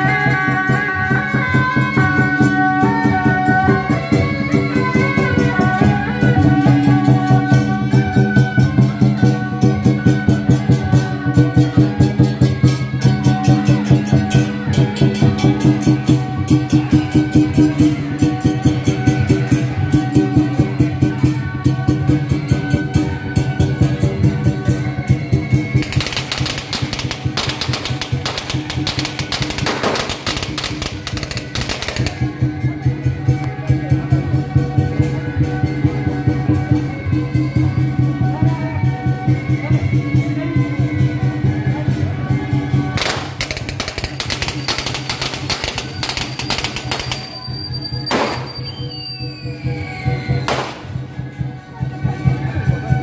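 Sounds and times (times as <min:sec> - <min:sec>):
firecrackers cracking: 0:25.8 - 0:32.4, 0:43.0 - 0:48.9, 0:50.5 - 0:51.0.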